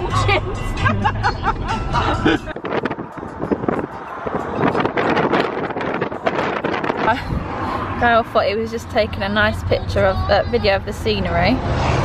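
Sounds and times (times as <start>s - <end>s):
car road noise: 0.0s - 12.0s
wind buffeting microphone: 2.2s - 9.9s.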